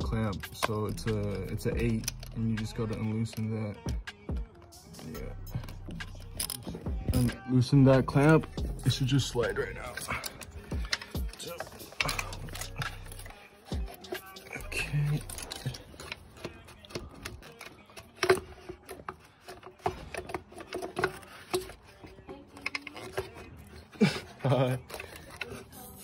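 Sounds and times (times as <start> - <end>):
tools clicking and knocking: 0.0 - 24.0, 24.6 - 25.7
faint background music: 0.0 - 26.0.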